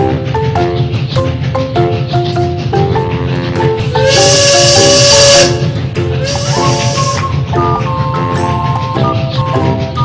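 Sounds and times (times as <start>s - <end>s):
background music: 0.0s - 10.0s
steam hissing: 0.0s - 10.0s
steam train whistle: 3.3s - 9.5s.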